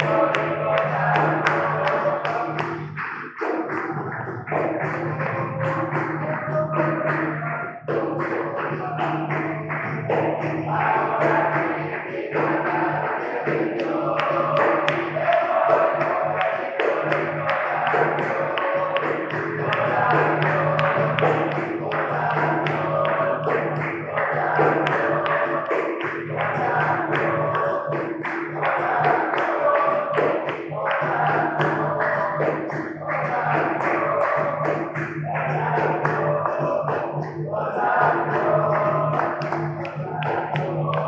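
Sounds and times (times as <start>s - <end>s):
group singing: 0.0s - 41.0s
hand clapping: 0.0s - 41.0s
hand drum: 0.0s - 41.0s
pandeiro: 0.0s - 41.0s.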